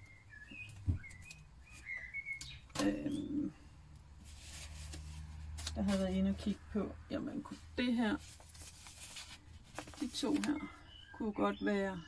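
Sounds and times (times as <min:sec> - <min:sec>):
high bird chirp: 0:00.0 - 0:03.5, 0:10.2 - 0:12.0.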